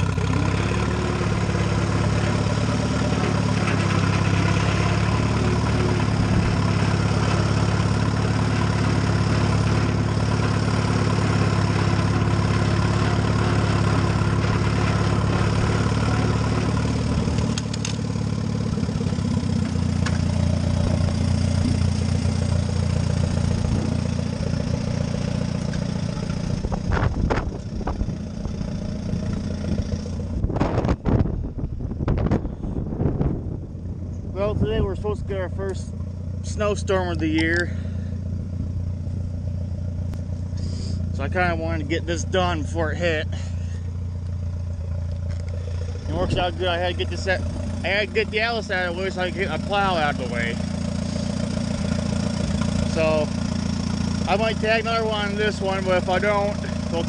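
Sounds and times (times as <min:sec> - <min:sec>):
tractor engine running: 0:00.0 - 0:57.0.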